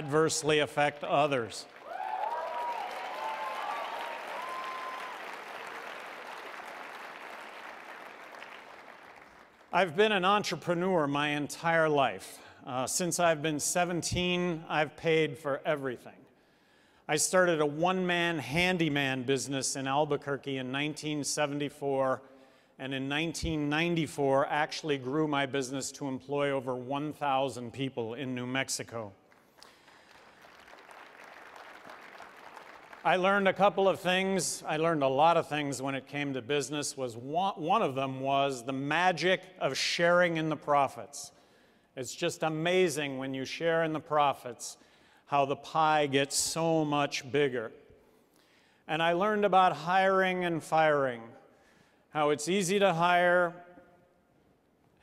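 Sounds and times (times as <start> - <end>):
large audience applauding: 1.6 - 9.7, 29.3 - 33.1.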